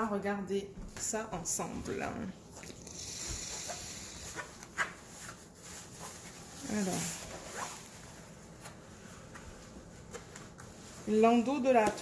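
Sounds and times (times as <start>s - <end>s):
canvas and paper rustling: 4.0s - 12.0s.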